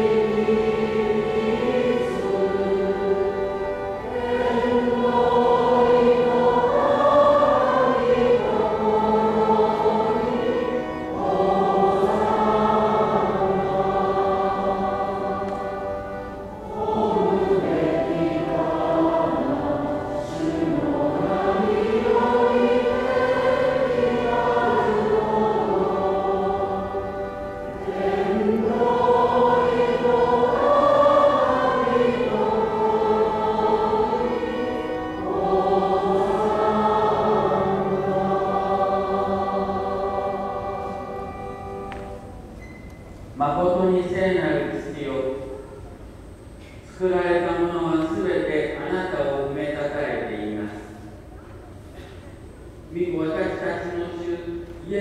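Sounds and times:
choir singing: 0:00.0 - 0:42.6.

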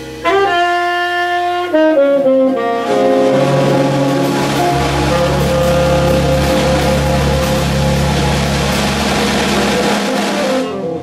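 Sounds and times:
cymbals washing: 0:00.0 - 0:11.0
jazz quartet playing: 0:00.0 - 0:11.0
tenor saxophone: 0:00.0 - 0:11.0.

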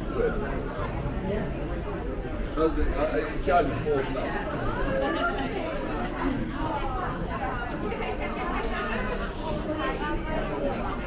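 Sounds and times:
chatter of passers-by: 0:00.0 - 0:11.0.

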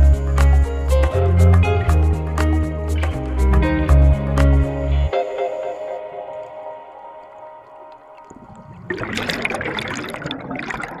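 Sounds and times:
rush of underwater bubbles: 0:08.2 - 0:11.0.

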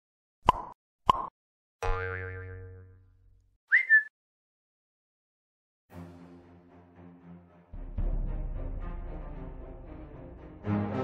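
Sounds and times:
cartoon plops: 0:00.4 - 0:03.0
wavering boing: 0:01.8 - 0:03.0
short high rising whistle: 0:03.7 - 0:04.1.

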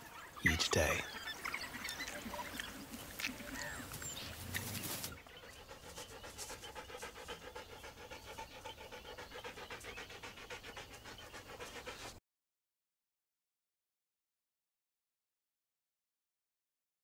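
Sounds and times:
wild dog panting: 0:00.0 - 0:12.2.

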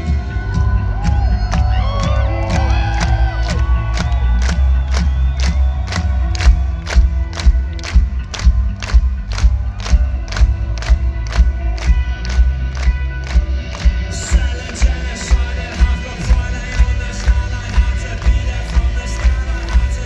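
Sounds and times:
crowd shouting and cheering: 0:00.0 - 0:20.0
live rock band: 0:00.0 - 0:20.0.

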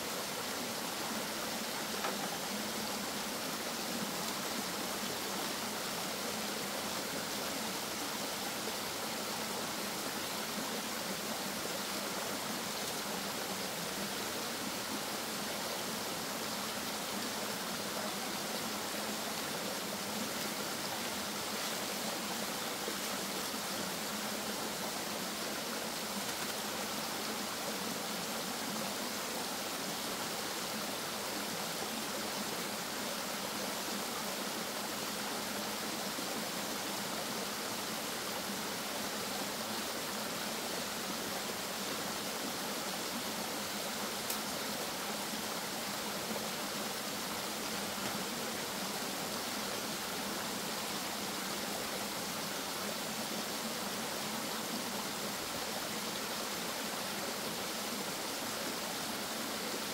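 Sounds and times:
stream cascading over rock: 0:00.0 - 0:59.9.

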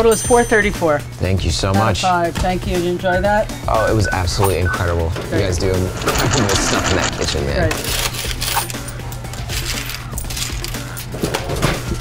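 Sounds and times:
coins clinking in a drawer: 0:05.9 - 0:11.2.

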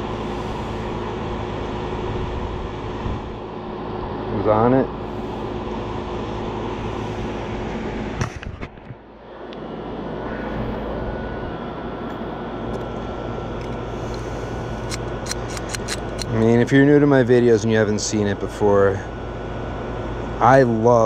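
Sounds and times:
fan rush: 0:00.0 - 0:21.0
low electrical hum: 0:00.0 - 0:21.0.

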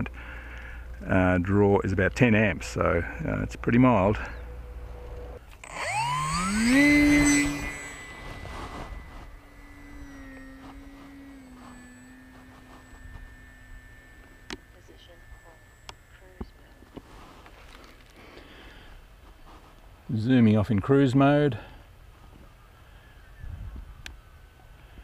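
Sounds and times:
model plane motor whine: 0:04.2 - 0:18.6.

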